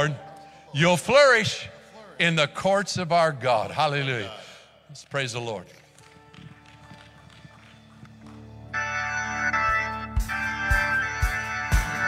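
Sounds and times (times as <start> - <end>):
organ worship music: 0.0 - 12.0.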